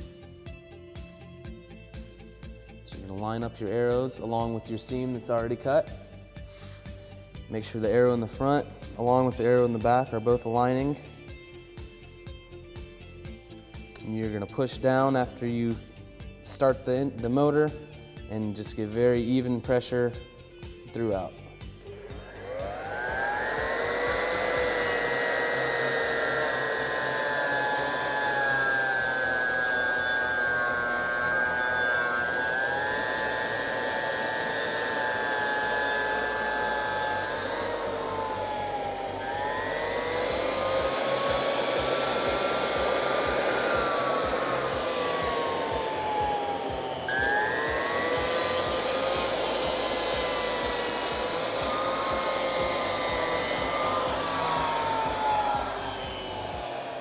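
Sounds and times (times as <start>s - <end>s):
electric groover motor whining: 21.8s - 57.0s.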